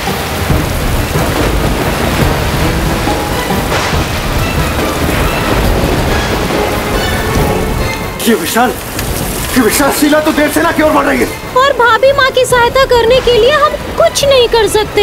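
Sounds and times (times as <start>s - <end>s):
deep thunder: 0.0s - 15.0s
heavy rain pouring: 0.0s - 15.0s.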